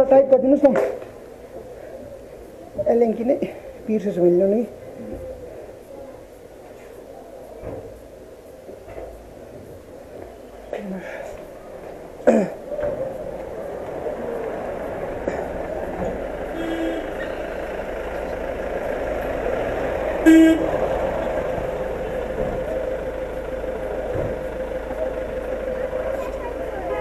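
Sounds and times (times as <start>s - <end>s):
street traffic hum: 0.0s - 27.0s
vehicle horn toots: 16.5s - 17.4s, 20.2s - 21.0s, 26.8s - 27.0s.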